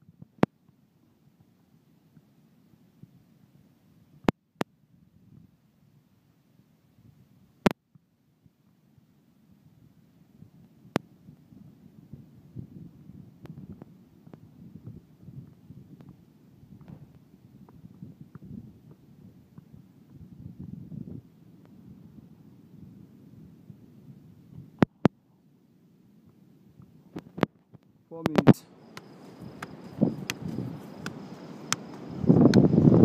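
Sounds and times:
wind buffeting microphone: 0:09.5 - 0:25.0, 0:28.4 - 0:33.0.

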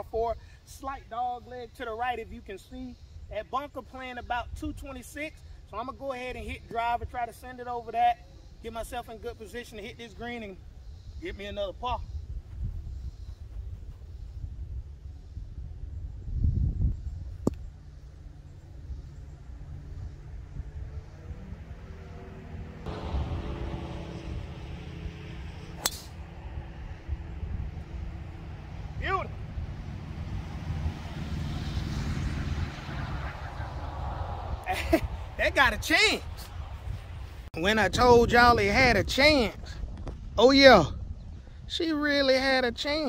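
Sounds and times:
low rumble: 0:15.2 - 0:37.5
golf driver striking ball: 0:25.4 - 0:26.2.

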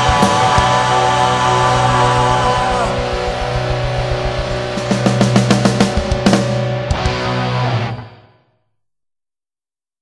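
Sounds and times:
rapid drum hits: 0:00.0 - 0:07.4
distorted electric guitar chord: 0:00.0 - 0:08.4.

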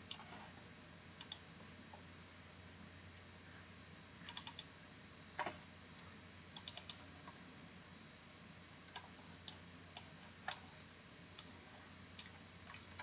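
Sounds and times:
computer mouse clicking: 0:00.0 - 0:00.5, 0:01.2 - 0:01.4, 0:04.2 - 0:04.7, 0:06.6 - 0:07.1, 0:08.9 - 0:10.7, 0:12.2 - 0:13.0
faint low hum: 0:00.0 - 0:13.0.

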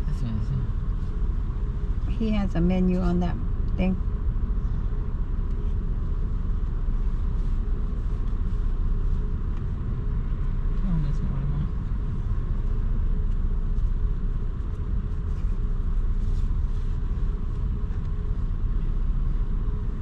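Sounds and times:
car idling: 0:00.0 - 0:20.0
faint steady hums: 0:00.0 - 0:20.0.

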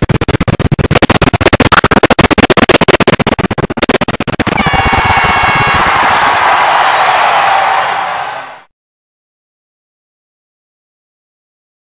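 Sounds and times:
high held tone: 0:04.5 - 0:05.9
crowd cheering and applauding: 0:04.5 - 0:08.7.

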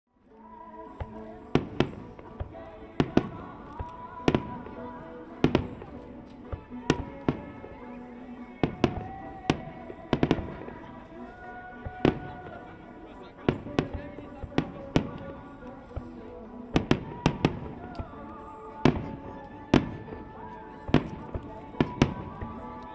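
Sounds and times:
music with held notes: 0:00.2 - 0:22.9
fireworks bursting: 0:01.1 - 0:07.8, 0:08.6 - 0:11.2, 0:13.4 - 0:18.1, 0:18.8 - 0:22.9.

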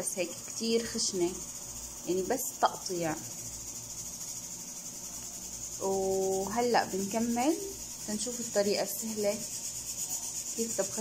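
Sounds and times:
steady high-pitched hiss: 0:00.0 - 0:11.0.

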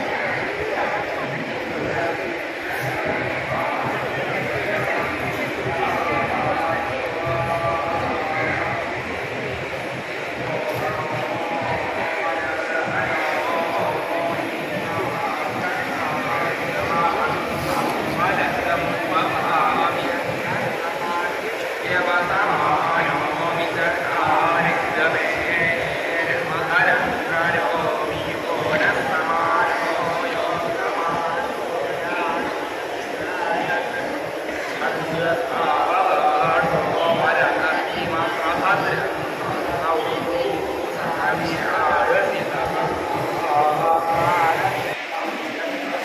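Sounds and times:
crowd talking or chanting: 0:00.0 - 0:46.0
faint music: 0:00.0 - 0:46.0.

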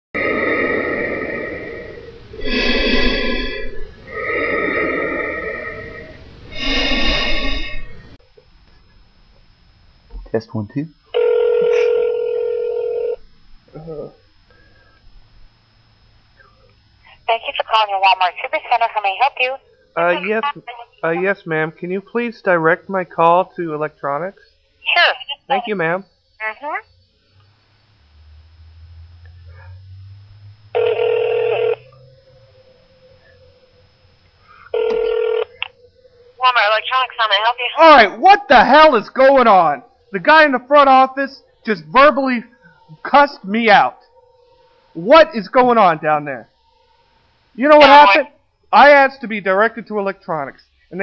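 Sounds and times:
telephone ringback tone: 0:11.2 - 0:13.2, 0:30.8 - 0:32.1, 0:34.7 - 0:35.8
person speaking: 0:17.2 - 0:21.4.

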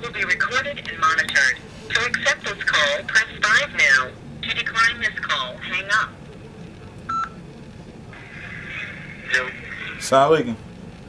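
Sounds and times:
phone keypad tone: 0:07.1 - 0:07.4.

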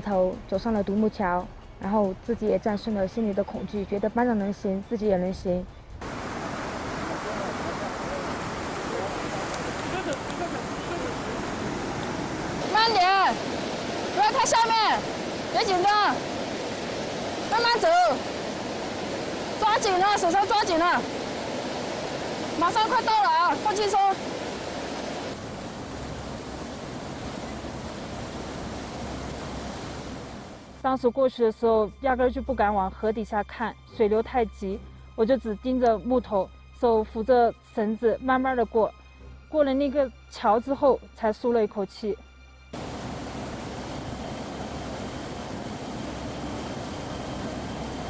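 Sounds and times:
stream rushing over rocks: 0:06.0 - 0:30.6, 0:42.8 - 0:45.0.

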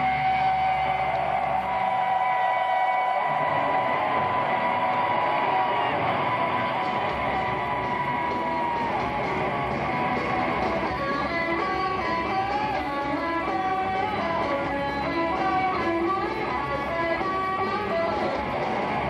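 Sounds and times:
electric guitar sustained notes: 0:00.0 - 0:19.0
heavy metal band playing live: 0:00.0 - 0:19.0.

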